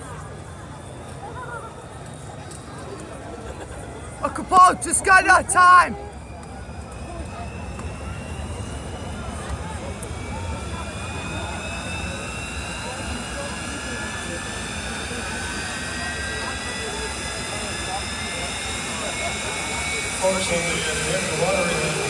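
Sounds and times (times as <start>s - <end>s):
murmur of crowd: 0.0s - 22.0s
turbine engine high whine: 0.0s - 22.0s.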